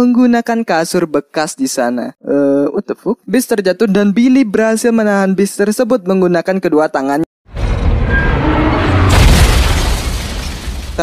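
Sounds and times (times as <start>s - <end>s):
heavy rumbling crash boom: 7.5s - 11.0s.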